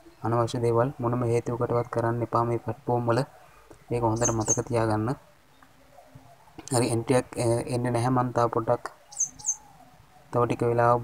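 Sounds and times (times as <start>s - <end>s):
man speaking: 0.2s - 3.3s, 3.9s - 5.2s, 6.7s - 9.0s, 10.3s - 11.0s
high falling bird chirps: 3.8s - 6.6s, 8.9s - 10.4s.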